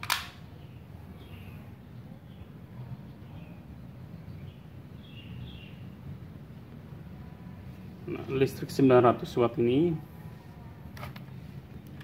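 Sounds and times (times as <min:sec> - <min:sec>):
sharp click: 0:00.0 - 0:00.4
low steady background hum: 0:00.0 - 0:12.0.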